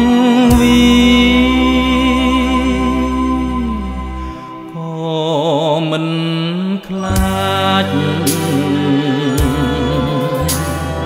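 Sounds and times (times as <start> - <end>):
bass line: 0.0 - 4.7, 7.0 - 11.0
instrumental backing: 0.0 - 4.9, 7.0 - 11.0
man singing with wide vibrato: 0.0 - 11.0
cymbal-like strikes: 8.2 - 11.0.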